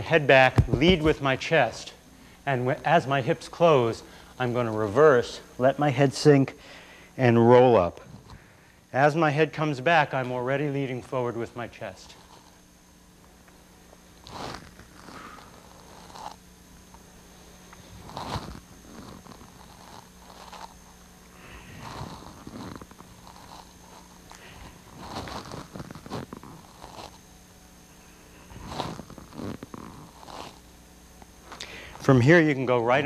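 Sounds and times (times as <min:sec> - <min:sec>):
soft body movement noises: 0:00.0 - 0:06.0, 0:09.5 - 0:27.2
faint steady hum: 0:00.0 - 0:33.0.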